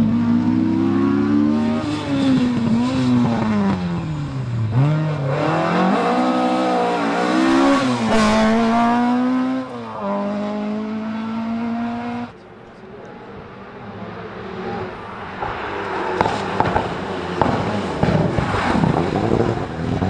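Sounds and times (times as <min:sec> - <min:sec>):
rally car engine revving: 0:00.0 - 0:12.3, 0:13.9 - 0:20.0.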